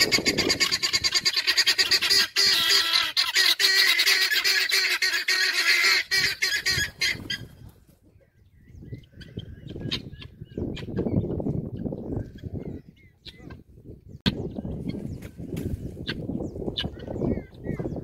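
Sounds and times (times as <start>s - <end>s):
guineafowl cackling chatter: 0.0s - 13.7s, 15.9s - 18.0s.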